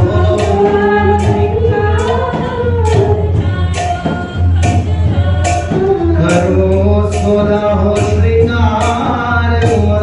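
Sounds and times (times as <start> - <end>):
devotional song singing: 0.0 - 10.0
sharp beat-keeping strike: 0.0 - 10.0.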